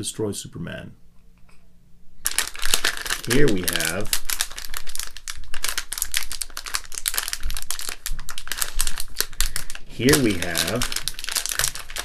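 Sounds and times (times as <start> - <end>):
plastic packet crinkling: 2.2 - 12.0.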